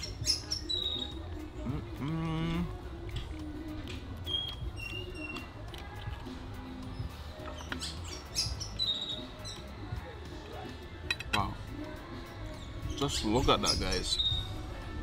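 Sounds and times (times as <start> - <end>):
birds chirping: 0.0 - 2.8, 4.2 - 5.7, 6.6 - 15.0
soft background music: 0.0 - 15.0.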